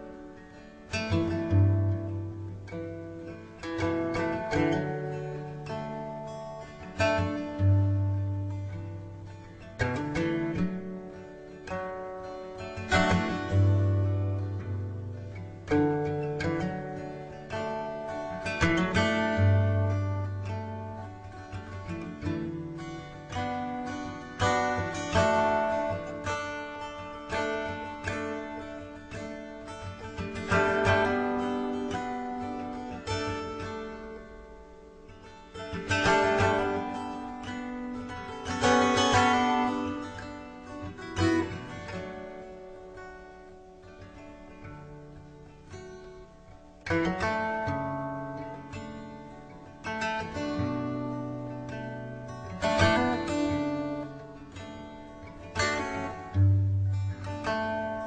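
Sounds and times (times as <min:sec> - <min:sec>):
acoustic guitar music: 0:00.0 - 0:58.0.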